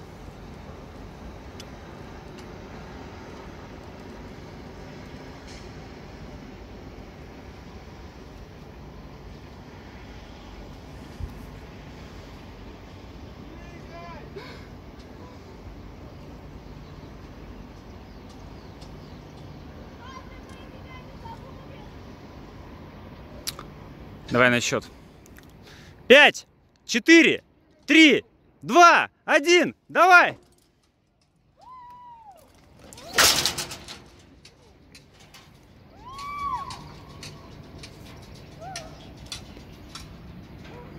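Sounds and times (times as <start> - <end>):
distant city traffic: 0.0 - 40.9
wind: 0.0 - 40.9
person speaking: 26.1 - 30.4
woman screaming: 31.6 - 32.4, 36.0 - 36.8.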